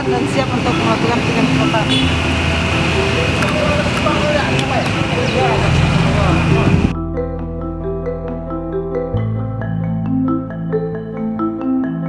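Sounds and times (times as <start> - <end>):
background voices: 0.0 - 7.0
street noise: 0.0 - 8.2
mallet percussion music: 0.0 - 12.0.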